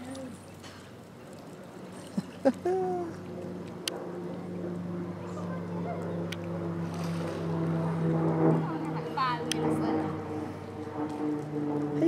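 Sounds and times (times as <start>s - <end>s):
steady motor hum: 0.0s - 12.0s.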